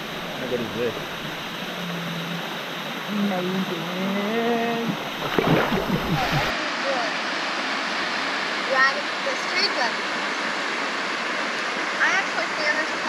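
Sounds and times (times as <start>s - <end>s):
waterfall rushing into pool: 5.0s - 13.0s.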